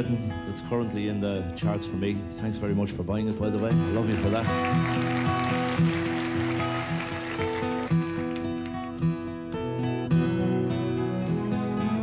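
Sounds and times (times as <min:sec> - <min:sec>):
acoustic guitars picking: 0:00.0 - 0:12.0.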